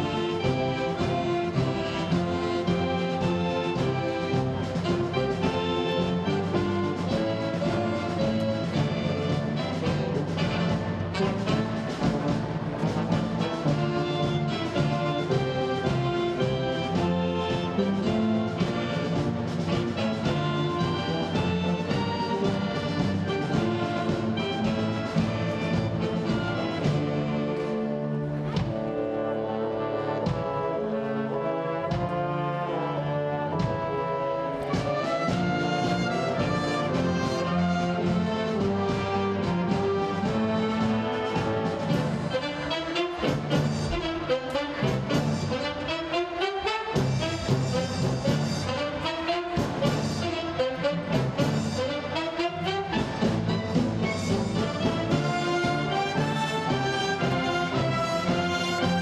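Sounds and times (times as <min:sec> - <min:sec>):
drum kit with cymbals: 0:00.0 - 0:27.7, 0:34.6 - 0:59.0
brass instruments melody: 0:00.0 - 0:59.0.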